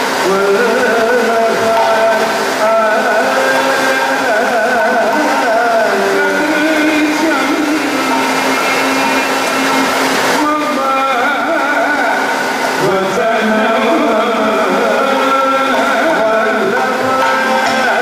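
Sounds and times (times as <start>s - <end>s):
continuous drumming: 0.0s - 18.0s
person singing ornamented vocals: 0.0s - 18.0s
cymbals: 6.0s - 11.0s.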